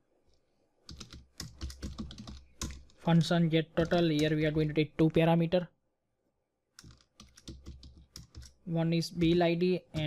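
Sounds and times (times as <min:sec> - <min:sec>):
keyboard typing clicks: 0:00.9 - 0:03.0, 0:03.8 - 0:04.6, 0:06.8 - 0:08.6.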